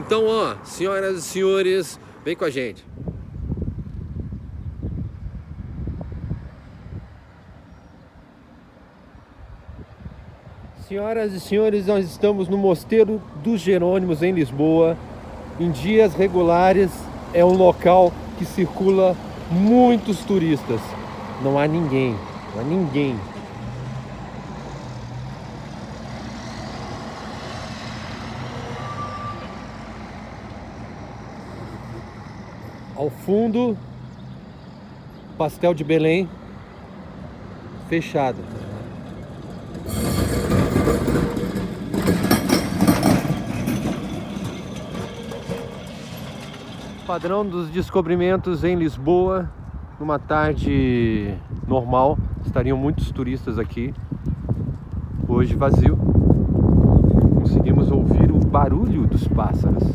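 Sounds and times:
passing traffic engine hum: 0.0 - 59.9
wind buffeting microphone: 2.8 - 7.7, 9.2 - 28.8, 38.4 - 59.9
short high beep: 28.8 - 29.6.

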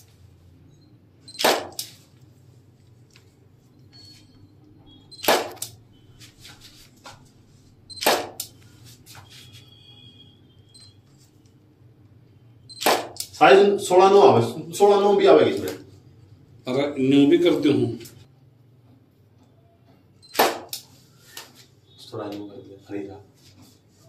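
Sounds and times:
camera shutter double click: 1.4 - 2.0, 5.2 - 5.7, 12.8 - 13.4.

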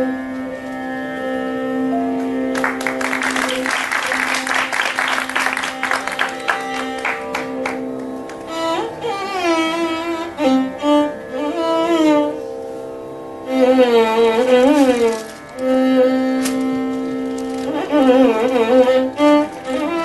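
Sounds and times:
violin playing melodic phrases: 0.0 - 20.0.

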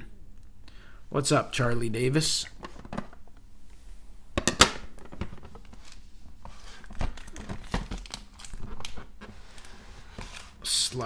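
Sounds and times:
plastic bags crinkling: 6.6 - 11.0
plastic cases clacking: 6.8 - 10.6.

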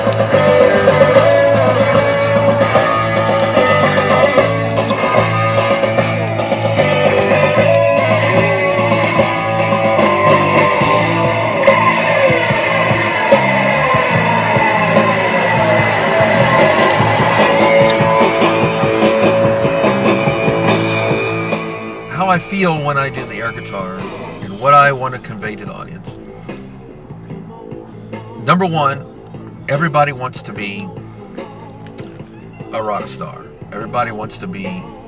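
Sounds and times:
rock music with electric guitar: 0.0 - 35.0.

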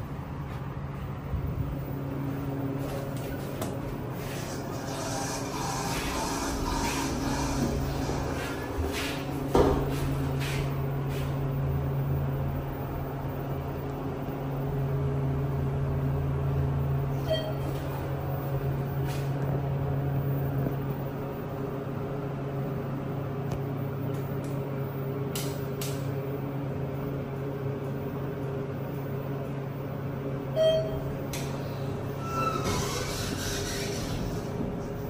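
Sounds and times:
elevator humming: 0.0 - 35.0
short electronic beep: 30.6 - 31.1.

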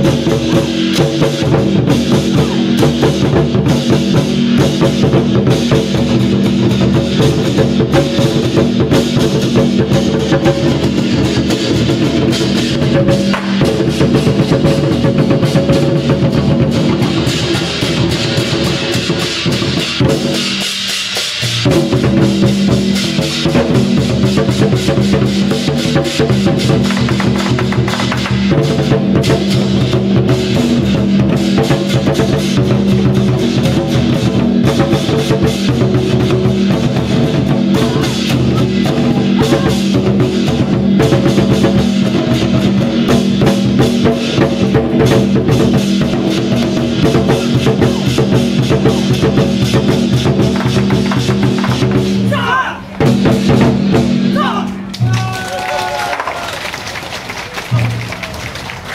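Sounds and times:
hand cymbals clashing: 0.0 - 52.4
barrel drums beaten fast: 0.0 - 55.3.

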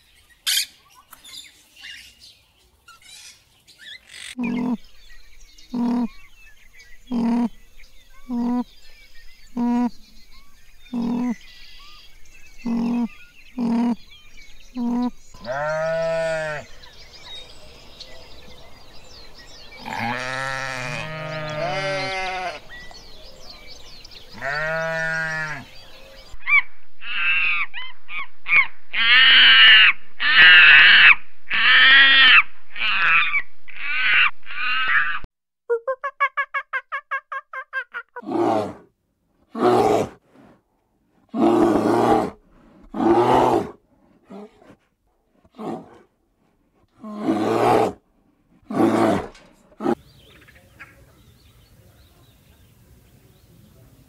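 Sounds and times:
sheep bleating: 14.9 - 16.7, 19.8 - 22.7, 24.4 - 25.7.

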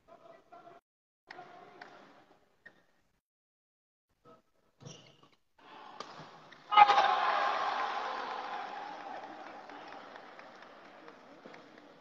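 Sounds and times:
crowd shouting and cheering: 6.7 - 11.2.

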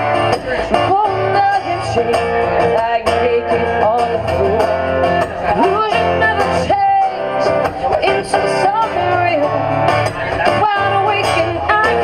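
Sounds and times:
strummed acoustic guitar: 0.0 - 12.0
woman singing: 0.0 - 12.0.

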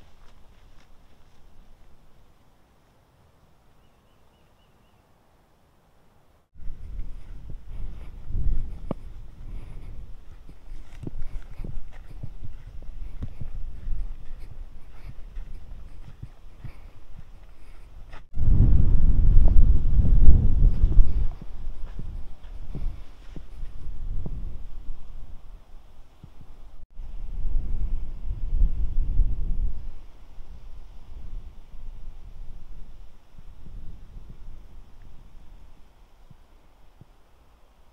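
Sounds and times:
footsteps crunching on leaf litter: 0.0 - 2.0
low microphone rumble: 6.6 - 25.7
wind rumble on microphone: 6.6 - 37.2.

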